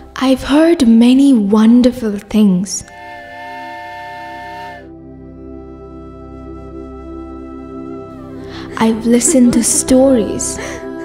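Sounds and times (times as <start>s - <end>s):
soft background music: 0.0s - 11.0s
train whistle blowing: 2.8s - 5.0s.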